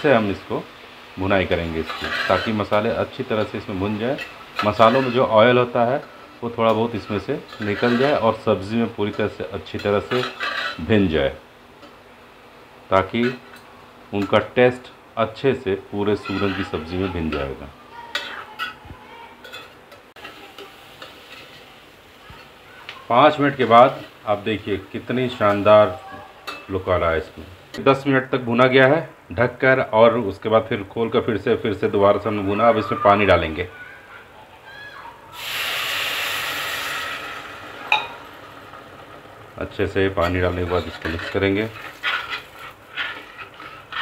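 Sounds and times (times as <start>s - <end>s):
faint sizzle of frying: 0.0s - 44.0s
spoon scraping in metal pot: 1.9s - 2.6s, 4.2s - 5.3s, 7.5s - 8.2s, 9.8s - 10.8s, 16.2s - 17.0s, 40.2s - 44.0s.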